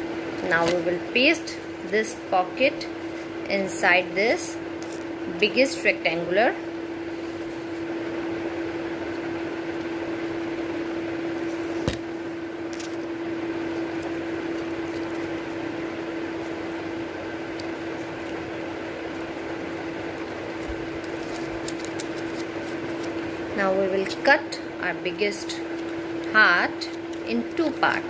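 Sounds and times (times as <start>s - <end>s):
appliance humming: 0.0s - 28.0s
paper being handled: 0.4s - 1.0s, 20.3s - 23.4s, 25.3s - 28.0s.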